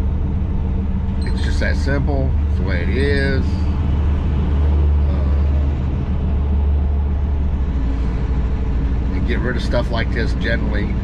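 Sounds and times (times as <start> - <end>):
road noise: 0.0 - 11.0
truck engine drone: 0.0 - 11.0.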